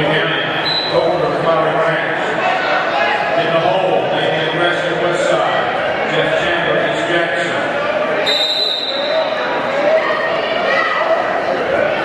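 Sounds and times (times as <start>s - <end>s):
crowd chatter: 0.0s - 12.0s
referee's whistle: 0.6s - 1.0s, 8.2s - 9.4s.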